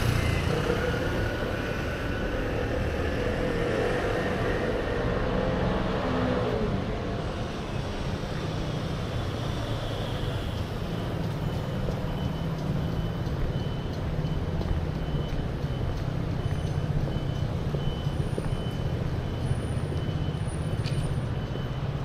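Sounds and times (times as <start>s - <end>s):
traffic engine rumble: 0.0s - 22.0s.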